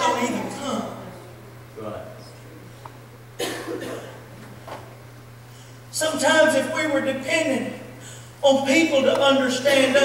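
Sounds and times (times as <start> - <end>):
low electrical hum: 0.0 - 10.0
person coughing: 3.4 - 4.2.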